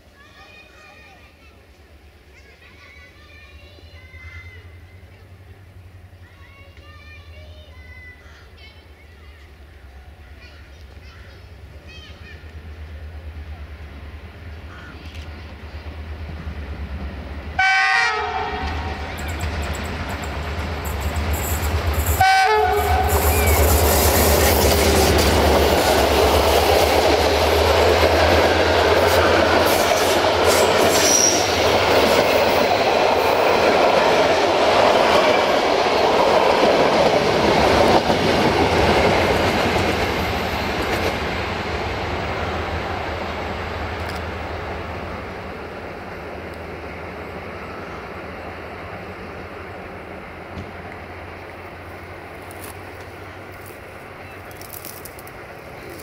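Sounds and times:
locomotive engine drone: 12.4 - 56.0
train horn blasts: 17.6 - 19.0, 22.2 - 23.6
train wheels over rail joints: 18.2 - 56.0.

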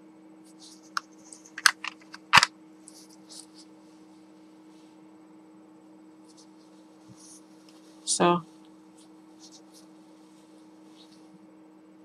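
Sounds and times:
faint electrical hum: 0.0 - 12.0
paper tissue crinkling: 8.9 - 11.3.

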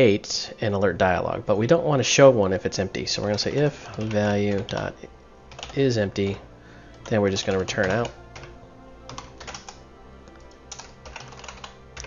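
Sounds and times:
computer keyboard typing: 3.2 - 4.9, 5.5 - 5.8, 6.9 - 9.8, 10.7 - 12.0.

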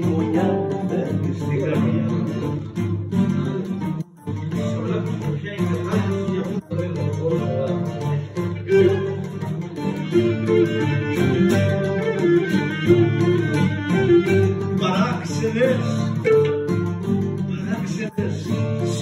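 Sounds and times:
bowed lyra melody: 0.0 - 19.0
plucked lute and guitar: 0.0 - 19.0.

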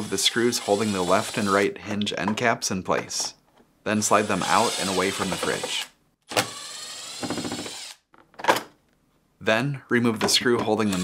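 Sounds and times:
cordless driver motor whine: 6.3 - 8.0.

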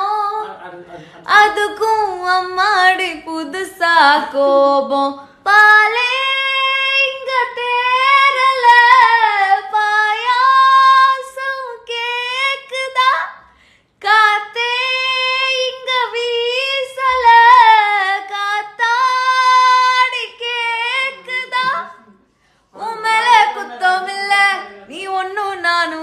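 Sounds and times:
woman singing unaccompanied: 1.3 - 13.4, 14.0 - 22.1, 22.8 - 26.0.

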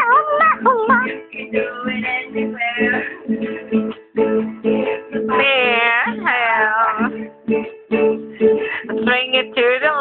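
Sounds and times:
guitar strumming: 0.0 - 10.0.

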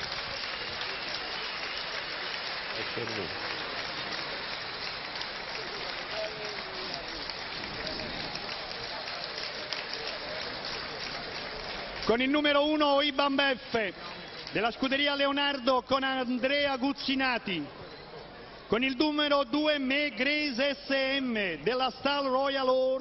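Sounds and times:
faint voices: 0.0 - 12.2
crowd applauding: 0.0 - 17.5.

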